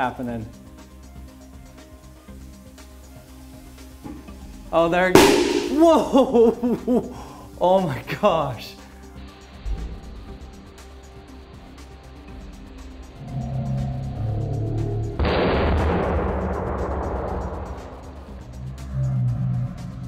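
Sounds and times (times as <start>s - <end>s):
background music with held tones: 0.0s - 20.0s
metal exploding in water: 5.2s - 6.5s.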